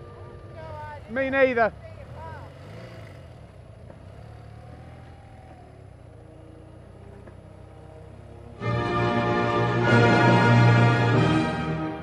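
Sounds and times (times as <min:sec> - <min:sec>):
motorcycle engine running: 0:00.0 - 0:08.7.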